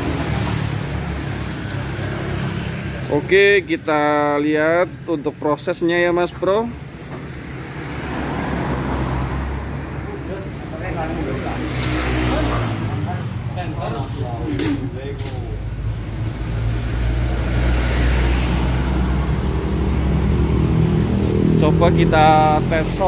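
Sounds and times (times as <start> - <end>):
voices talking: 1.4 - 23.0.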